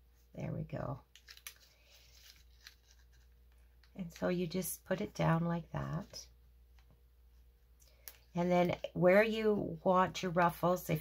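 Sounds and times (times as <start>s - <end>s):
filter paper crinkling: 1.1s - 4.3s.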